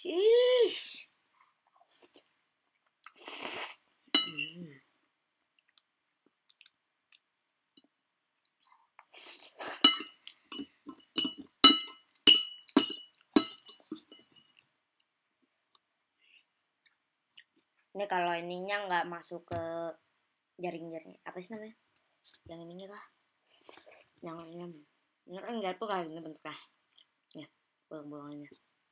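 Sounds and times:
slurp of noodles: 3.1s - 3.8s
cutlery clinking on plate: 4.2s - 4.6s, 9.8s - 14.6s.

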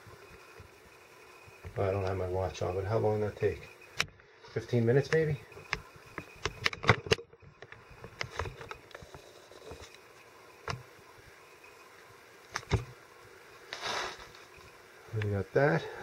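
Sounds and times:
camera handling rustle: 5.7s - 10.0s.

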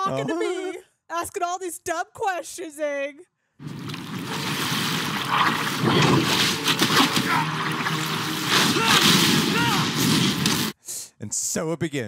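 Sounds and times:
water rushing and splashing: 3.6s - 10.8s.

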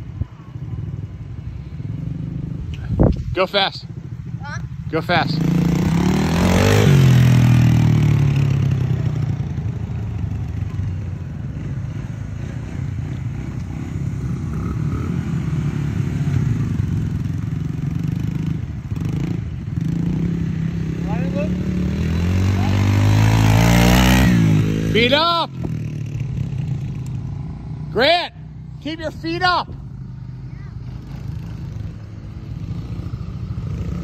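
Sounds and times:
dirt bike engine passing: 0.0s - 34.0s.

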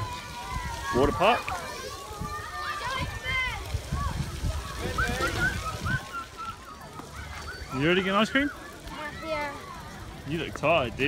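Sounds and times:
wind rumble on microphone: 0.0s - 6.3s
children calling and shrieking: 0.0s - 11.0s
splashing water: 0.0s - 11.0s.

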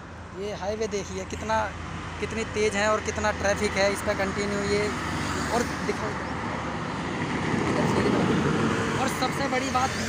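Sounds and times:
bus passing at speed: 1.1s - 10.0s.

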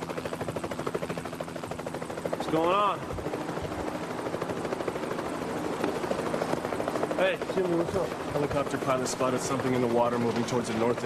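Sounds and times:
helicopter rotor chopping: 0.0s - 11.0s.

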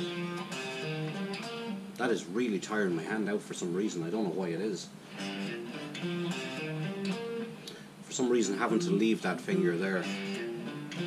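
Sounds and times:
electric guitar lead lick: 0.0s - 2.1s, 5.1s - 8.0s, 8.7s - 11.0s.

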